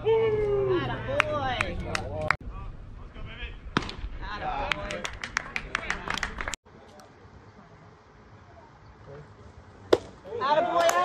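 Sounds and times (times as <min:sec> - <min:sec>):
baseball sharp crack: 0:03.7 - 0:05.4, 0:09.9 - 0:11.0.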